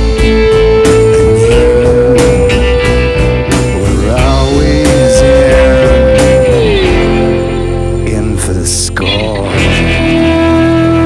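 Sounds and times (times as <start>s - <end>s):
long held note: 0.0s - 7.9s, 9.8s - 11.0s
instrumental rock music with guitar: 0.0s - 11.0s.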